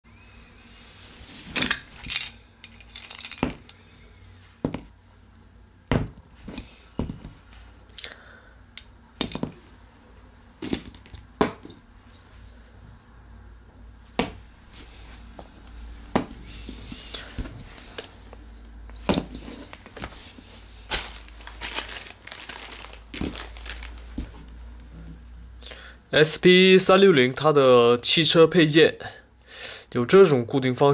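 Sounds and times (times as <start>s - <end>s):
plastic parts rustling and clicking: 1.4s - 3.8s, 20.9s - 24.4s.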